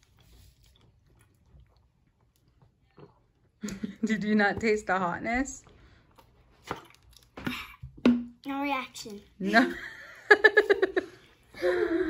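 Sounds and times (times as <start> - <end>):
person gulping drink: 0.8 - 3.9.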